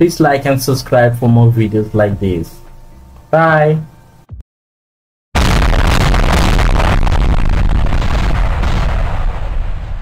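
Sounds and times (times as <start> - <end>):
loud rumbling crash: 5.4 - 10.0.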